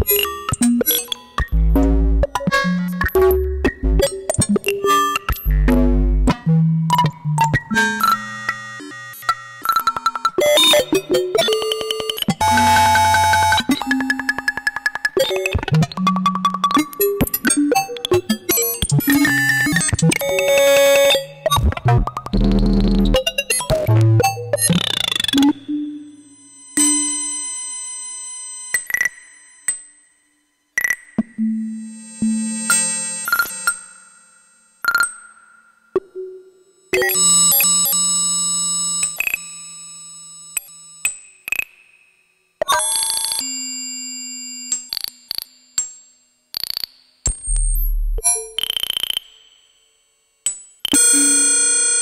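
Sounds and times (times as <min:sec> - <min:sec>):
synthesizer clicks and pings: 0:34.8 - 0:36.3.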